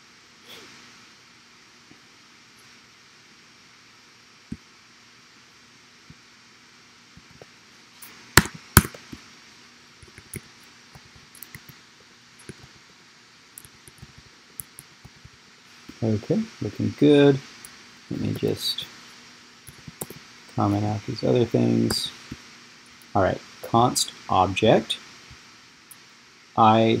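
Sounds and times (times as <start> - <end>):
faint steady hum: 0.0 - 27.0
keyboard and mouse clicks: 10.0 - 11.8, 13.6 - 15.3.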